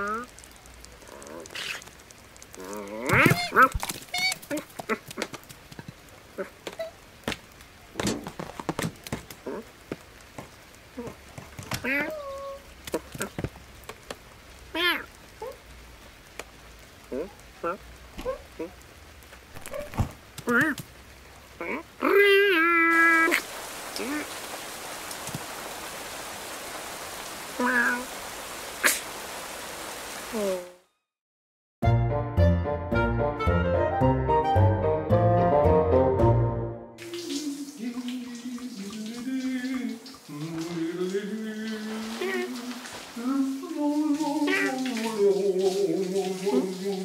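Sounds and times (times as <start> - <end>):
running water: 0.0 - 30.7, 37.0 - 47.0
rain patter: 0.0 - 30.8, 37.0 - 47.0
man humming: 37.0 - 47.0.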